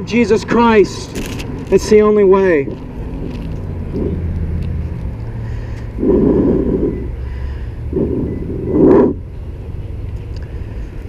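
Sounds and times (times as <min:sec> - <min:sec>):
motor vehicle engine rumble: 0:00.0 - 0:11.0.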